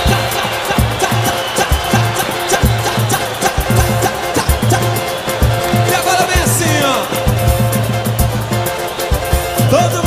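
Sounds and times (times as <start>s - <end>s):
fast high percussion: 0.0s - 10.0s
samba band music: 0.0s - 10.0s.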